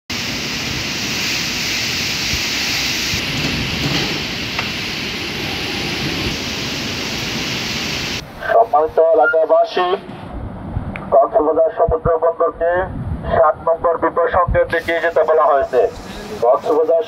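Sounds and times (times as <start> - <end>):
heavy rain: 0.1 - 9.2, 14.8 - 17.0
strong wind: 0.1 - 16.6.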